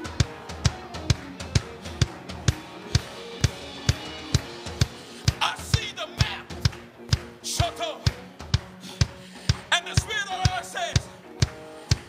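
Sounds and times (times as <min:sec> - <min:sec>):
drum kit steady beat: 0:00.0 - 0:12.0
live band instrumental groove: 0:00.0 - 0:12.0.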